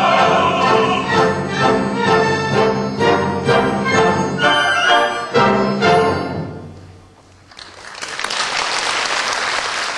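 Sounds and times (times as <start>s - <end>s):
orchestral chord: 0.0s - 7.0s
audience applause: 7.5s - 9.9s.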